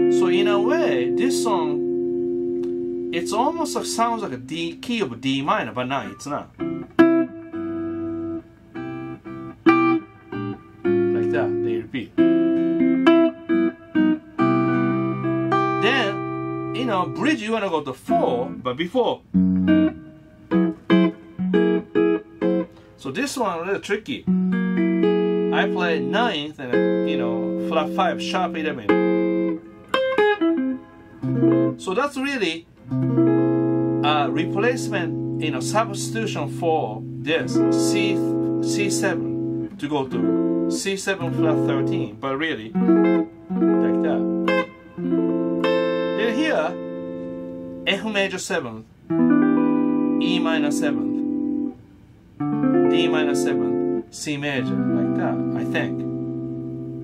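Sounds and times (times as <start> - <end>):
clean electric guitar chord stabs: 0.0 - 5.2, 6.0 - 17.4, 19.3 - 23.0, 24.3 - 31.9, 32.8 - 48.0, 49.1 - 51.8, 52.4 - 57.0.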